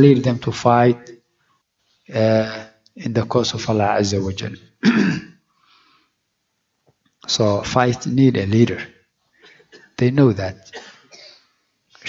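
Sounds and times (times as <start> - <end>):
man speaking: 0.0 - 1.1, 2.1 - 4.6, 7.3 - 8.9, 10.0 - 10.8
man coughing: 4.8 - 5.4, 9.4 - 10.0, 10.7 - 11.6.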